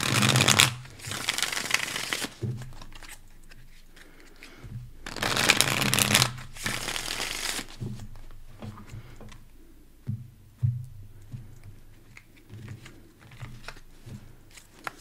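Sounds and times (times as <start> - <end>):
cards being shuffled by hand: 0.0 - 9.4, 11.3 - 15.0.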